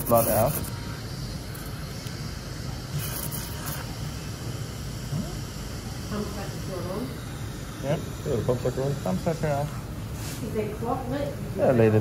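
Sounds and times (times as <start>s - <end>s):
steady hiss: 0.0s - 11.2s.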